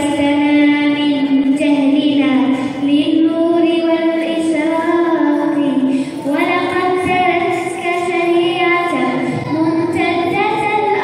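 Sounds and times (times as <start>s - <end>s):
girl singing into microphone: 0.0s - 11.0s.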